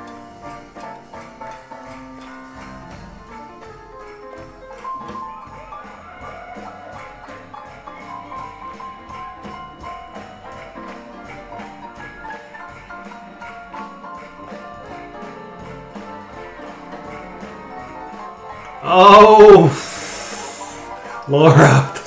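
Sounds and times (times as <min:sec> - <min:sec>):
drums keeping steady beat: 0:00.0 - 0:22.0
piano: 0:00.0 - 0:22.0.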